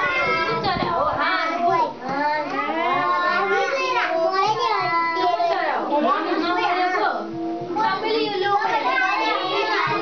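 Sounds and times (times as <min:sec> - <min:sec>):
young children talking: 0:00.0 - 0:10.0.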